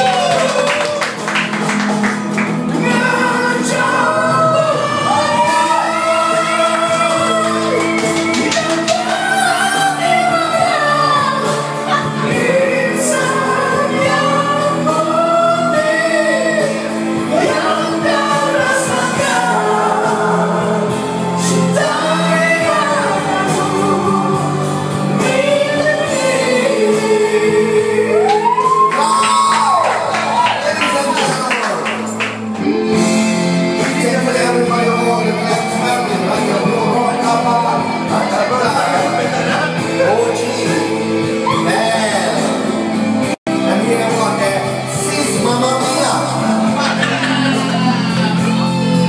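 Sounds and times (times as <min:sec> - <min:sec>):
recorded backing music: 0:00.0 - 0:49.0
man singing into microphone: 0:02.6 - 0:49.0.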